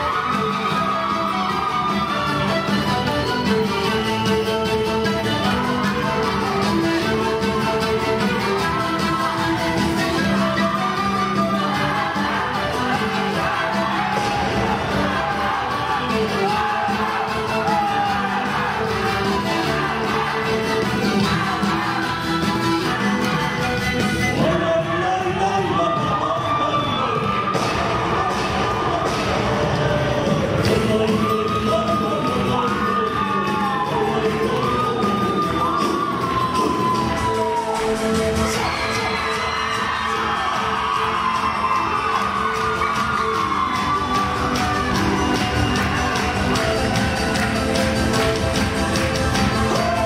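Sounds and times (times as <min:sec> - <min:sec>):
dance music with singing: 0:00.0 - 0:50.0
people whooping and cheering: 0:00.0 - 0:50.0.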